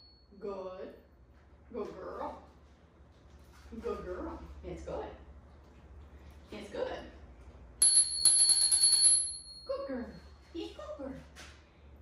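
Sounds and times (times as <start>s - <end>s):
small metallic bell ring: 7.8s - 9.9s.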